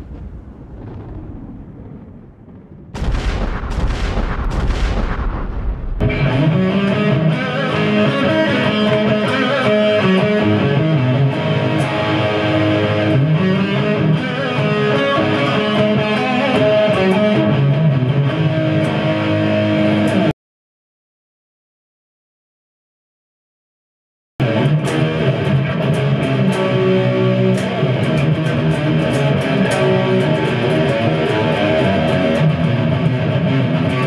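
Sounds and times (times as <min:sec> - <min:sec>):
noisy booming sound effect: 0:00.0 - 0:06.7
electric guitar riff: 0:06.0 - 0:20.3, 0:24.4 - 0:34.0.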